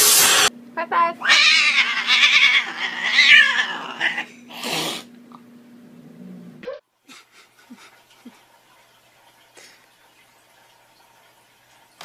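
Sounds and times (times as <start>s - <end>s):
cat yowling: 1.2s - 4.3s.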